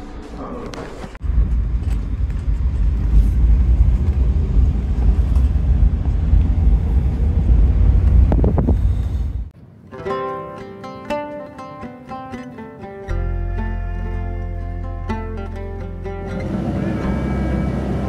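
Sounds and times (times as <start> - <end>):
vehicle engine and road noise: 1.2 - 9.6, 15.3 - 18.0.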